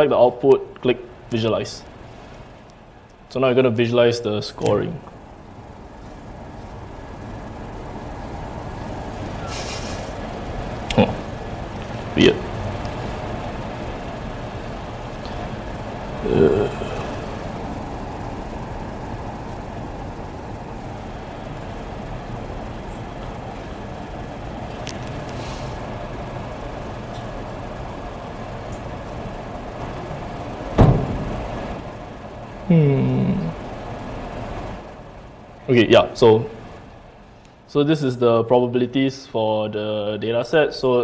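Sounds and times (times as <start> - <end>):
room hum: 0.0 - 41.0
short murmur: 9.4 - 10.2, 16.1 - 17.6
sharp knock: 30.8 - 31.4.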